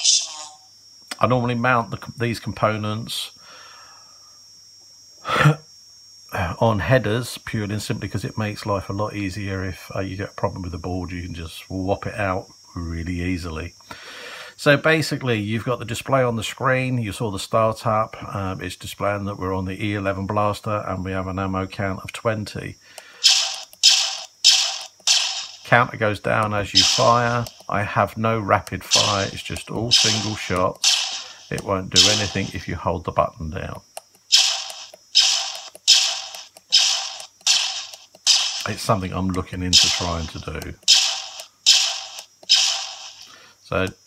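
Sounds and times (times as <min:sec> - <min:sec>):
blaster zap sound effect: 0:23.2 - 0:25.7, 0:26.8 - 0:27.5, 0:28.9 - 0:32.6, 0:34.3 - 0:38.9, 0:39.7 - 0:43.3.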